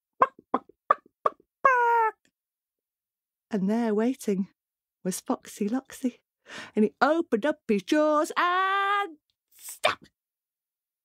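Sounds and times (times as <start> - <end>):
woman imitating hen clucks: 1.2 - 2.2.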